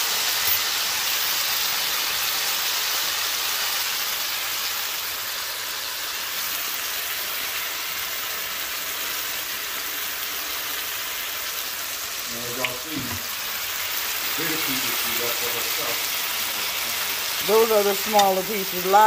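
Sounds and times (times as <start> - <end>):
meat sizzling in a frying pan: 0.0 - 19.0.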